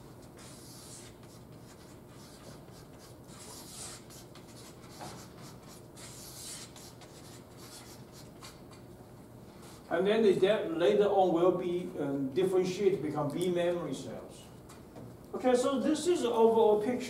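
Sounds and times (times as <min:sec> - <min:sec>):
chalk scratching on blackboard: 0:00.2 - 0:08.6.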